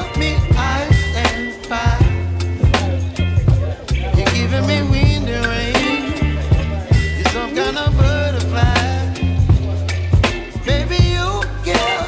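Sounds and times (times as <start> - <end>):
song with bass and drum beat: 0.0 - 12.0.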